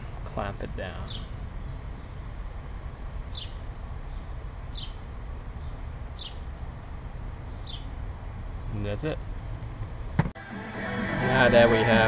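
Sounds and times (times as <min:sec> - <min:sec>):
low outdoor rumble: 0:00.0 - 0:12.0
bird chirping: 0:01.0 - 0:02.2, 0:03.2 - 0:06.5, 0:07.4 - 0:08.8.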